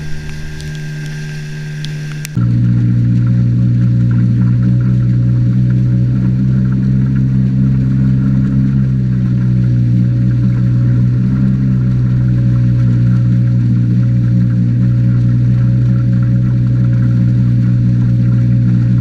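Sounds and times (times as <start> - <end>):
outboard motor droning: 0.0 - 19.0
water rushing past hull: 0.0 - 19.0.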